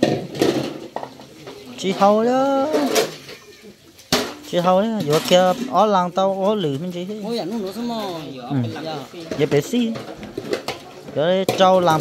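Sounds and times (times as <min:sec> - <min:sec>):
plates and bowls clinking: 0:00.0 - 0:12.0.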